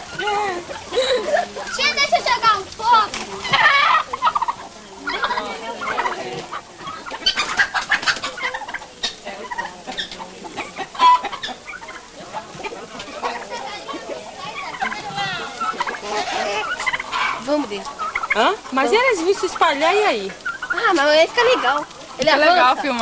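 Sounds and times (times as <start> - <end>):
chickens clucking and calling: 0.0 - 23.0.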